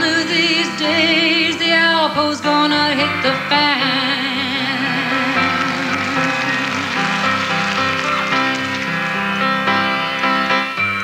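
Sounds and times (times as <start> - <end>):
folk-rock band playing: 0.0 - 11.0.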